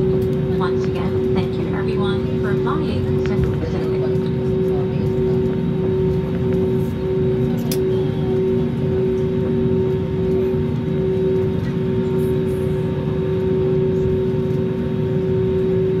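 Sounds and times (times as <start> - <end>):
airliner cabin engine hum: 0.0 - 16.0.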